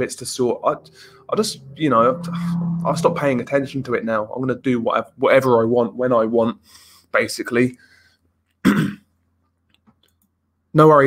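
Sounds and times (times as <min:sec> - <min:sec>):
man clearing throat: 0:08.6 - 0:09.1.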